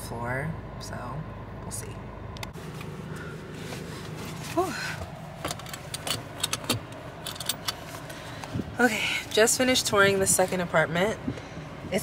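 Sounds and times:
low hum in car cabin: 0.0 - 12.0
light clicks and rattles: 5.4 - 8.6.

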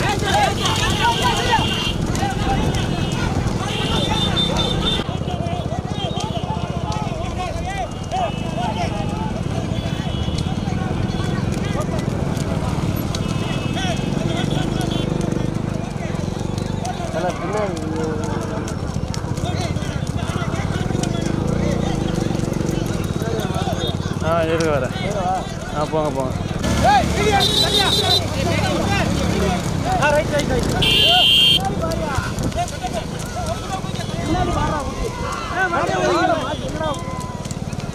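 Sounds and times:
men shouting: 0.0 - 11.0, 24.9 - 37.6
hooves clopping on road: 0.0 - 37.9
motorcycle engines running: 0.0 - 37.9.

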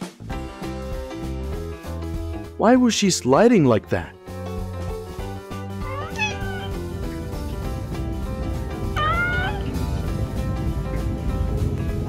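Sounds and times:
background music: 0.0 - 12.0
cat meowing: 5.8 - 7.0, 8.8 - 9.8.

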